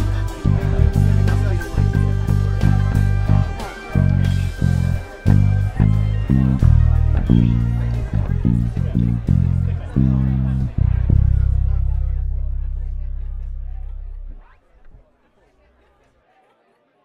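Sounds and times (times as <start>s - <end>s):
backing track music: 0.0s - 14.4s
electric bass played fingerstyle: 0.0s - 15.0s.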